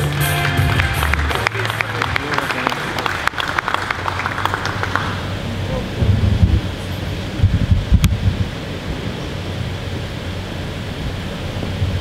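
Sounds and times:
low hum of large hall: 0.0 - 12.0.

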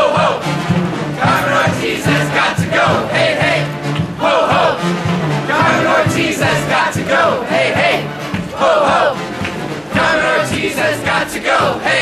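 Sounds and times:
crowd chanting slogan: 0.0 - 12.0.

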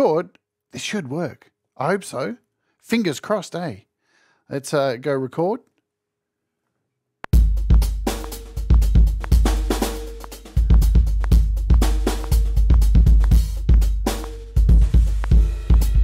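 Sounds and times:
hi-hat: 7.4 - 16.0
kick drum with deep boom: 7.4 - 16.0
snare drum: 7.4 - 16.0.

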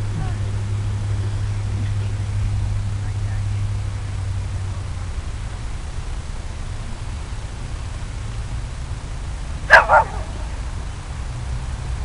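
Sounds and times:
dog barking: 9.7 - 10.4.

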